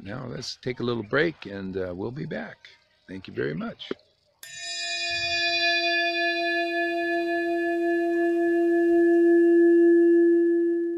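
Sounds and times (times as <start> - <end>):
bell-like chime ringing: 4.4 - 7.3.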